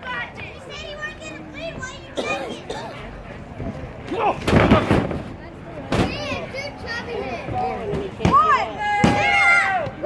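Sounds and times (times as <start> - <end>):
crowd shouting: 7.7 - 10.0.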